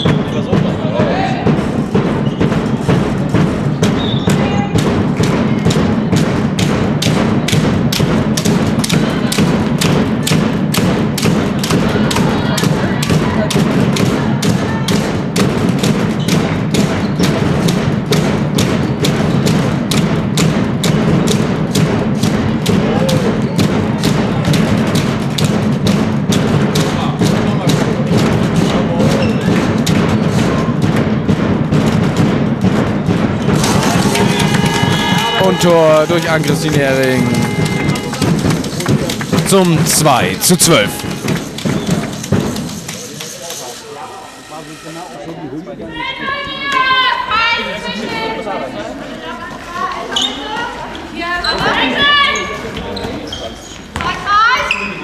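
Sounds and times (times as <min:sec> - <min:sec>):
fast drum thuds: 0:00.0 - 0:43.1
hubbub of voices: 0:00.0 - 0:55.0.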